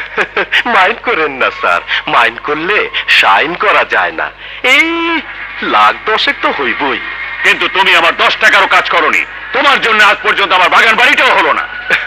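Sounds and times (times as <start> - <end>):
film dialogue speech: 0.6 - 11.7.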